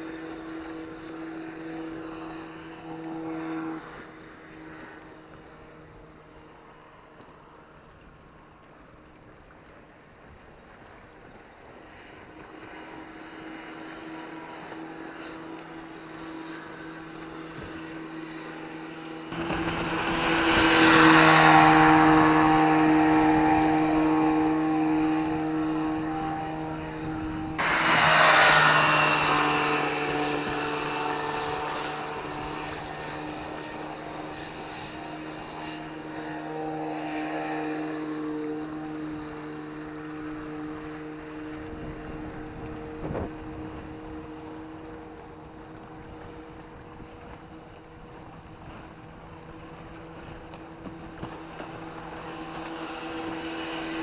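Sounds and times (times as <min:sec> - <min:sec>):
outboard motor droning: 0:00.0 - 0:54.0
sudden loud rush of noise: 0:19.3 - 0:22.3, 0:27.6 - 0:30.8.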